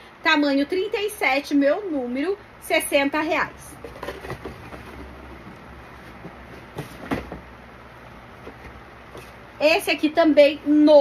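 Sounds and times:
shoeboxes knocking: 3.8 - 5.5, 6.2 - 7.5.

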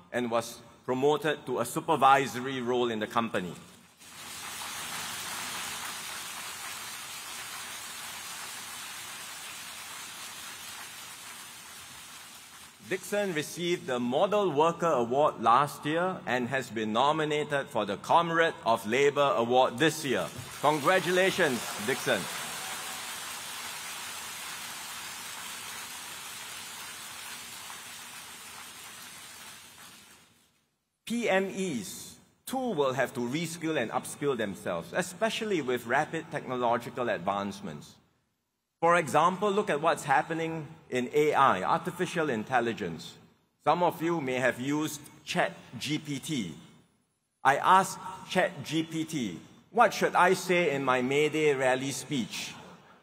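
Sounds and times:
audience applauding: 4.0 - 12.9, 20.3 - 30.3.

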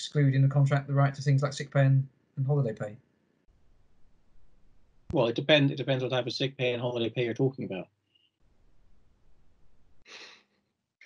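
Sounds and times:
faint breath puff: 10.0 - 10.5.

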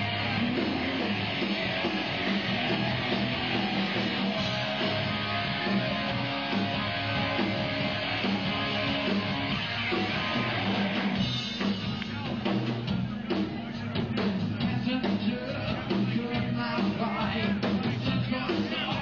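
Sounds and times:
live rock band playing: 0.0 - 19.0
strummed electric guitars: 0.0 - 19.0.

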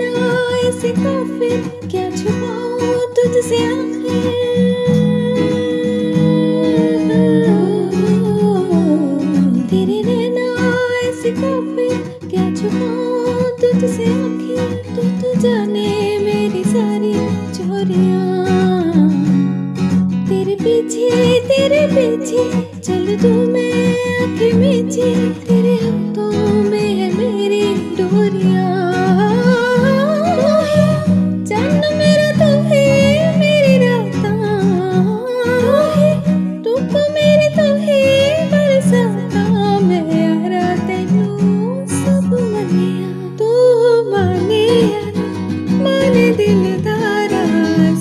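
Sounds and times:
acoustic guitar chords: 0.0 - 48.0
woman humming a melody: 5.0 - 10.0
woman singing a held note: 5.6 - 9.7.

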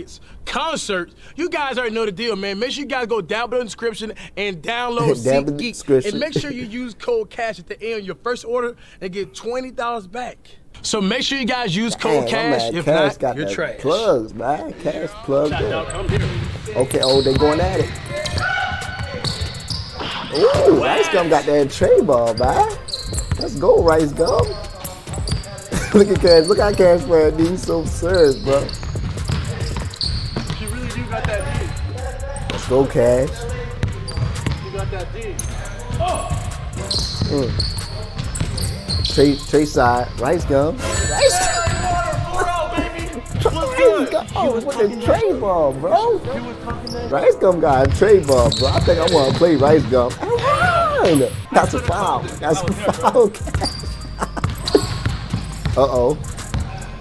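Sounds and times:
men talking: 0.0 - 57.0
shoe squeaks: 15.4 - 57.0
basketball bouncing on wooden floor: 28.8 - 31.7, 47.8 - 50.6, 53.4 - 55.8.

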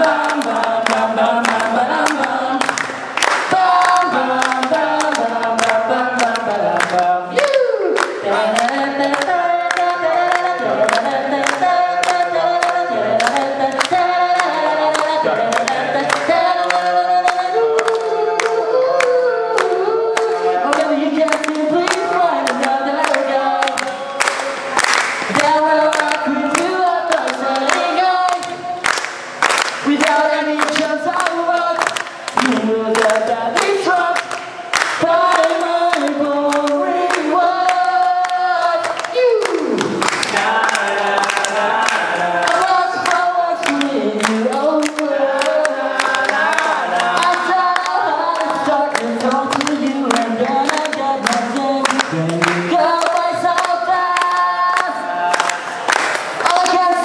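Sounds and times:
crowd singing in unison: 0.0 - 28.9, 29.7 - 57.0
hand claps: 0.0 - 57.0
man singing into microphone: 3.5 - 24.2, 36.5 - 55.5.

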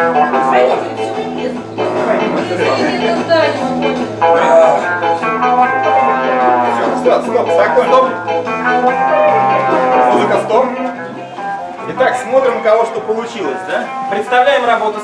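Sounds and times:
steady bass line: 0.0 - 12.4.

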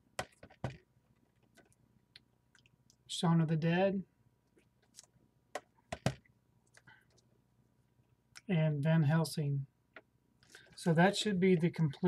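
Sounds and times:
plastic cases clicking and tapping: 0.2 - 0.8, 5.6 - 6.3.

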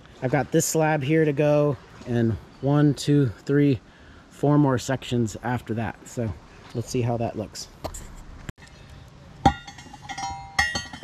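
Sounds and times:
metal tool clanking on concrete: 9.4 - 11.0.

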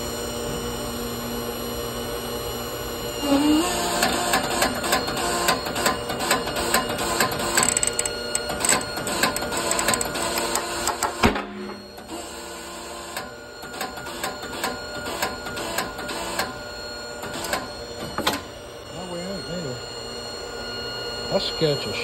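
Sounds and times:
metal clicks and creaks under load: 7.3 - 11.0.

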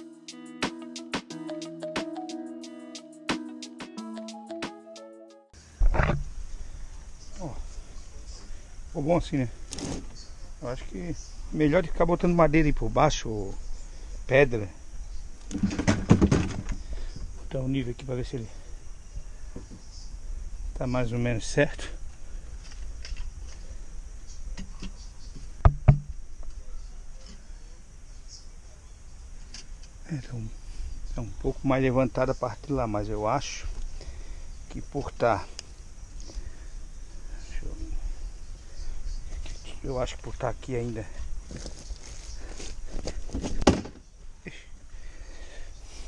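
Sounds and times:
insects chirring: 5.6 - 46.0
spirit level knocking on board: 25.6 - 26.2
thumps on plastic tank: 25.7 - 26.1.

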